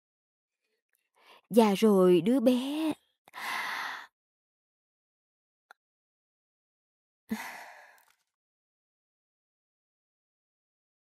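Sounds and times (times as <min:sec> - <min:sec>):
person sighing: 0:07.3 - 0:08.0.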